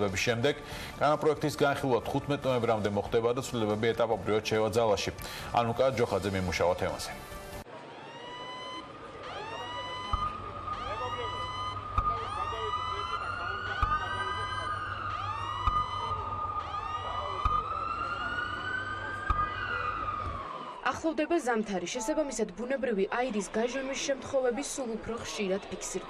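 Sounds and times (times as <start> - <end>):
fast sweeping siren: 7.7 - 21.2
slow wailing siren: 7.7 - 21.2.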